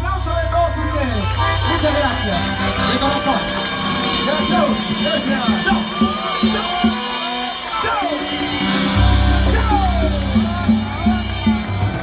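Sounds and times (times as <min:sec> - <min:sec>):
crowd shouting and singing: 0:00.0 - 0:12.0
live band playing: 0:00.0 - 0:12.0
drum and cymbal strikes: 0:01.0 - 0:12.0.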